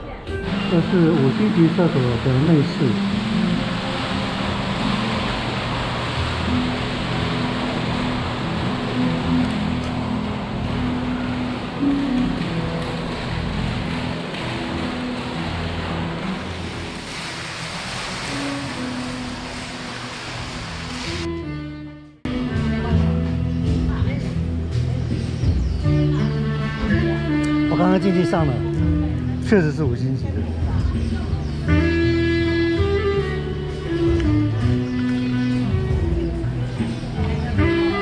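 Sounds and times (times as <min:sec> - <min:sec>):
background music with held notes: 0:00.0 - 0:17.3, 0:21.0 - 0:38.0
water fountain splashing: 0:00.2 - 0:21.3, 0:22.3 - 0:38.0.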